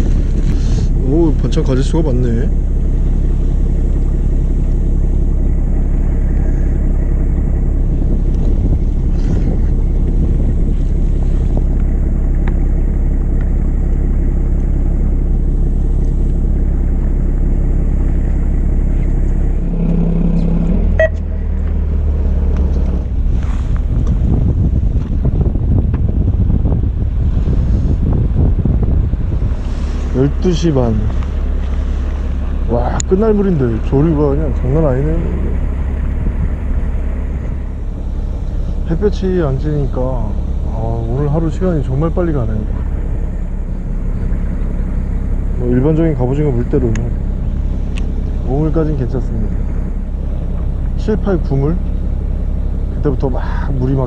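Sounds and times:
boat engine droning: 0.0 - 54.0.

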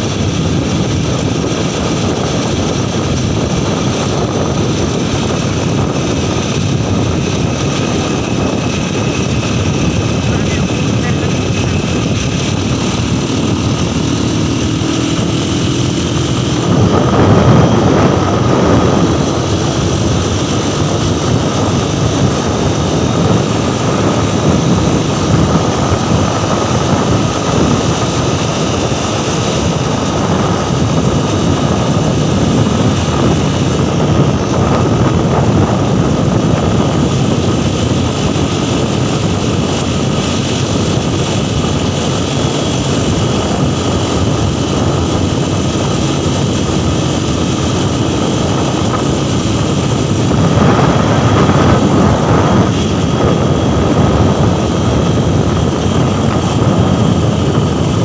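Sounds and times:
vehicle engine and road noise: 0.0 - 58.0.

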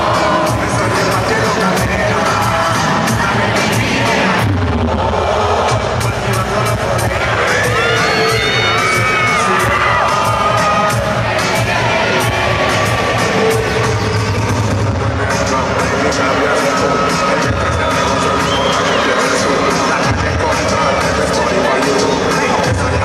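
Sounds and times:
crowd cheering and shouting: 0.0 - 23.0
loud live concert music: 0.0 - 23.0.

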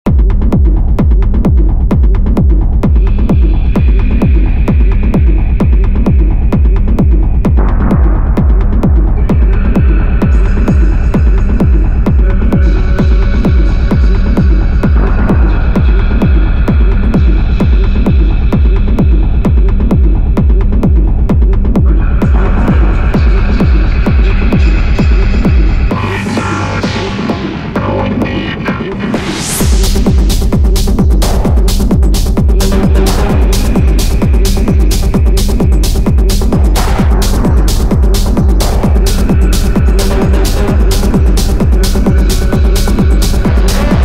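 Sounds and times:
heavy throbbing bass: 0.0 - 44.0
techno kick drum: 0.0 - 44.0
synth layers: 21.8 - 44.0.

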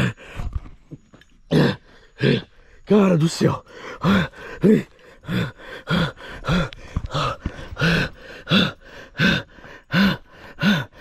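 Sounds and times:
man panting and groaning: 0.0 - 0.6, 1.5 - 11.0.

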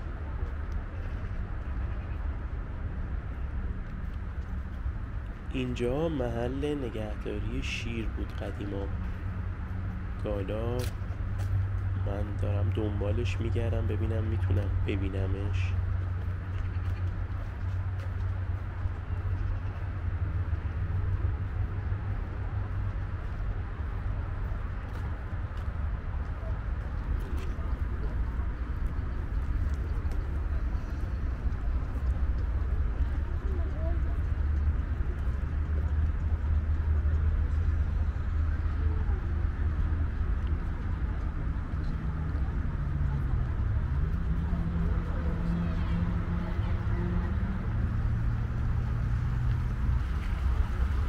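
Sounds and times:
distant voices: 0.0 - 51.0
steady low rumble: 0.0 - 51.0.

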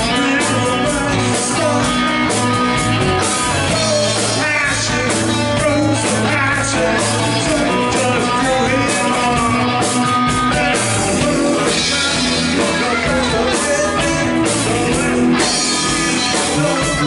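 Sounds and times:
drum kit: 0.0 - 17.0
electric bass: 0.0 - 17.0
electric guitar: 0.0 - 17.0.

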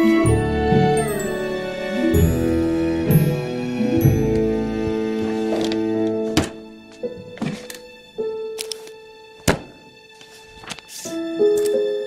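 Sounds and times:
soft film score music: 0.0 - 12.0.

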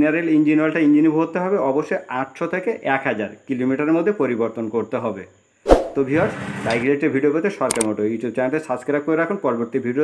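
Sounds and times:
man talking: 0.0 - 5.3, 6.0 - 10.0
mouse click sound effect: 7.7 - 7.9.

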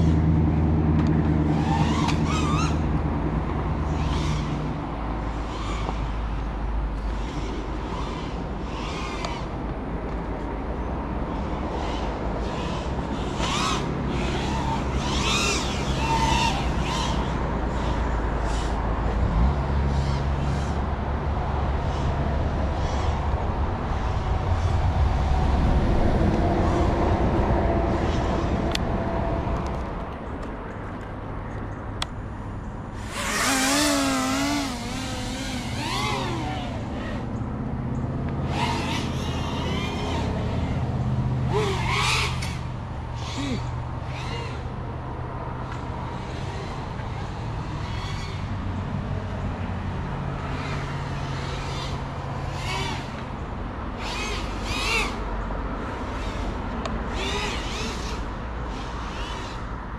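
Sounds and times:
drone motors whining: 0.0 - 30.0, 32.3 - 59.9.

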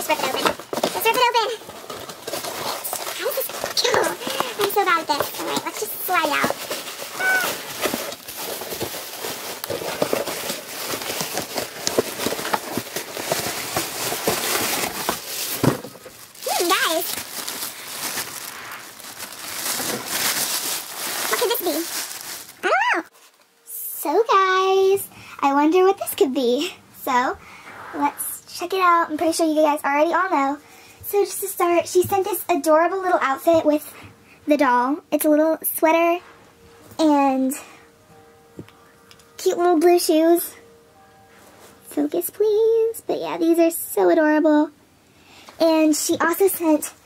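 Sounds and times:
cardboard and tape ripping: 0.1 - 22.8.

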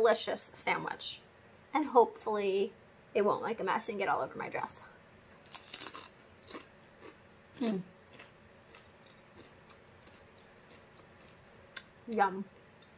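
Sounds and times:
crunchy chewing: 5.4 - 12.9
person humming mm: 7.6 - 7.9.

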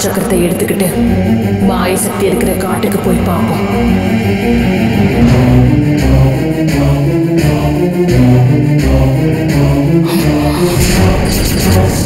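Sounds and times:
choir singing over a beat: 3.2 - 12.0.

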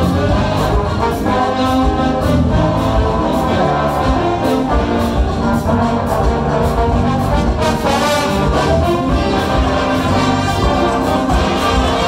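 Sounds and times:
brass chords: 0.0 - 12.0
drums and hand percussion: 0.0 - 12.0.

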